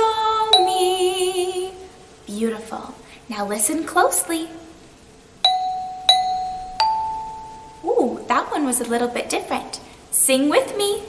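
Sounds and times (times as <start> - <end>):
metal bells struck with mallet: 5.4 - 7.8.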